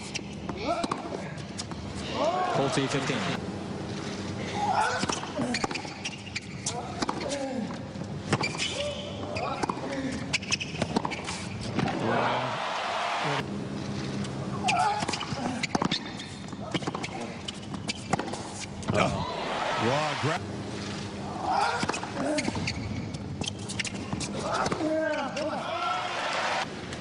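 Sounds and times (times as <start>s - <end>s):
voices in stadium: 2.0s - 3.4s, 11.8s - 13.5s, 18.9s - 20.4s
crowd applause: 11.9s - 13.4s, 19.4s - 20.4s.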